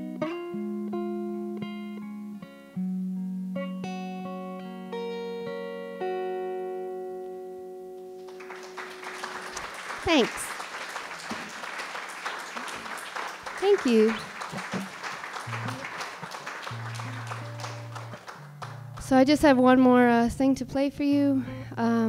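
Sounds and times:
electric guitar chord ringing: 0:00.0 - 0:09.5, 0:16.7 - 0:19.1
audience applause: 0:08.2 - 0:19.1
crowd whooping: 0:08.3 - 0:18.5
low guitar notes: 0:15.4 - 0:22.0.

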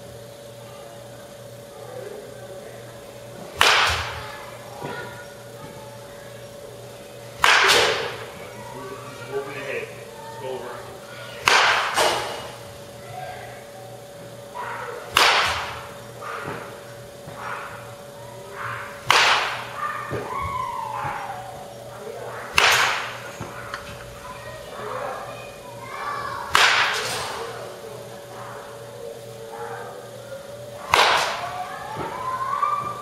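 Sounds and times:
steady hum: 0:00.0 - 0:33.0
baseball bat cracking balls: 0:03.4 - 0:05.0, 0:07.4 - 0:08.4, 0:11.4 - 0:12.9, 0:15.1 - 0:18.1, 0:18.7 - 0:21.4, 0:22.5 - 0:24.1, 0:26.5 - 0:27.5, 0:30.8 - 0:32.2.

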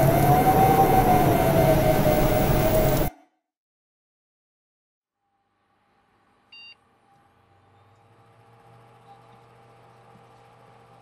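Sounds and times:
faint electronic hum: 0:05.7 - 0:11.0.

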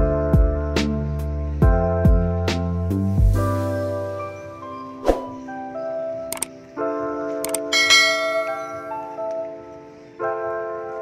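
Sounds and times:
chime-like keyboard music: 0:03.2 - 0:11.0
sharp click: 0:06.3 - 0:06.5, 0:07.4 - 0:07.7
short high clicks: 0:06.3 - 0:06.5, 0:07.4 - 0:07.7
bright bell-like chime: 0:07.7 - 0:09.2.

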